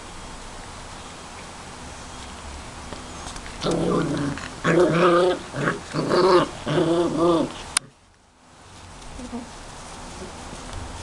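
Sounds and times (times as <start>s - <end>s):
puppies play growling: 3.4s - 8.0s.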